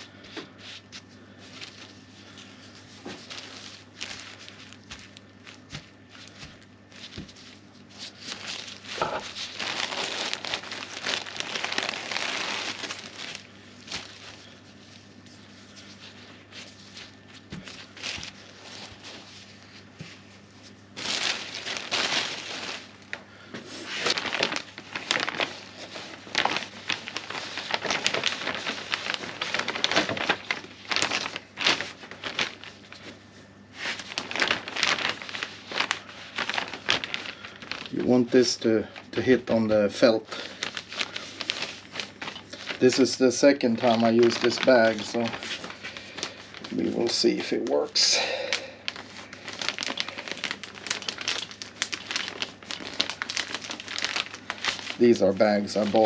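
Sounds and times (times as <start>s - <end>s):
faint steady hum: 0.0s - 56.0s
plastic bag crinkling: 0.0s - 56.0s.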